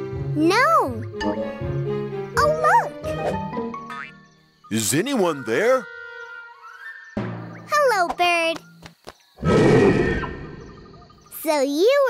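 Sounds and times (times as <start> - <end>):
rough scary cartoon sound: 9.4 - 10.7.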